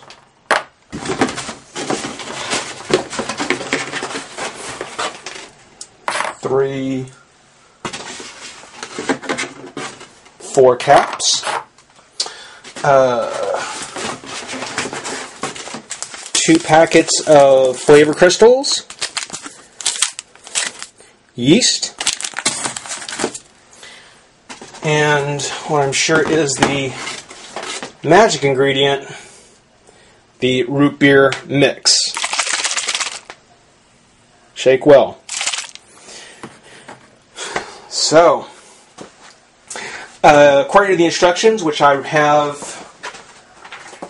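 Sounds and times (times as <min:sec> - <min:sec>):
paper packets rustling: 0:00.9 - 0:05.6, 0:13.3 - 0:23.5, 0:31.9 - 0:33.4, 0:35.3 - 0:35.8
bottle handling noise: 0:35.3 - 0:35.8.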